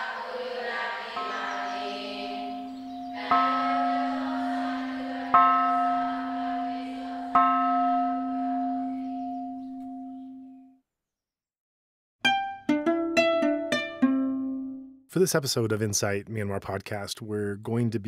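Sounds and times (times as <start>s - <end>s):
bell ringing: 1.2s - 10.4s.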